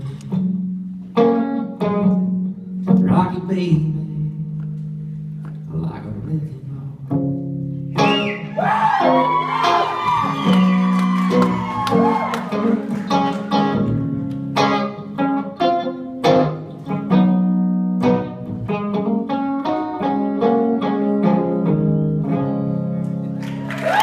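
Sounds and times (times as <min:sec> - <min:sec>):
electric guitar solo: 0:00.2 - 0:03.0, 0:07.1 - 0:24.0.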